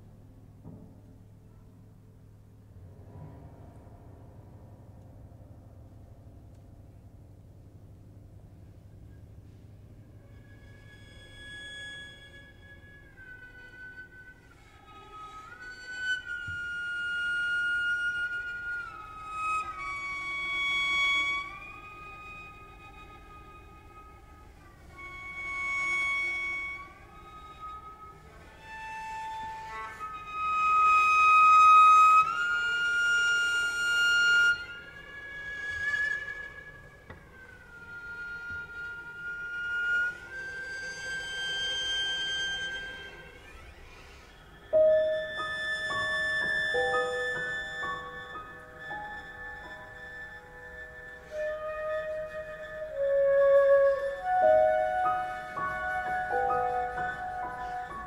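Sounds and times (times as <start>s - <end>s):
slow chamber music: 0.0s - 58.0s.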